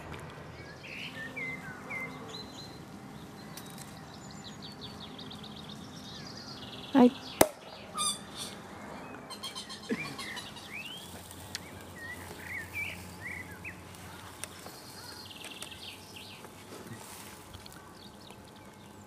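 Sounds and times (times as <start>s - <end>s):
birds chirping: 0.0s - 19.0s.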